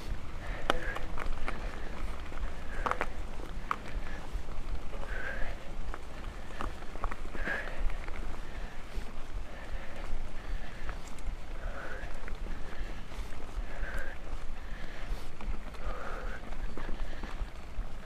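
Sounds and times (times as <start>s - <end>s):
bike tyres on dirt trail: 0.0s - 18.0s
rider breathing heavily: 0.0s - 18.0s
stones and bike clicking and rattling: 0.0s - 18.0s.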